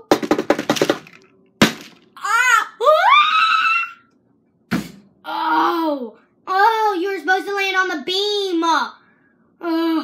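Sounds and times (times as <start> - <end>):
girl crying out: 2.2 - 4.1.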